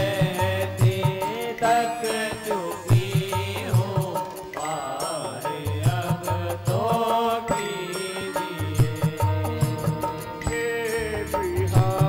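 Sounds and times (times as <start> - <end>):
instrumental accompaniment: 0.0 - 12.0
person singing a chant-like melody: 0.0 - 12.0
steady drum rhythm: 0.0 - 12.0.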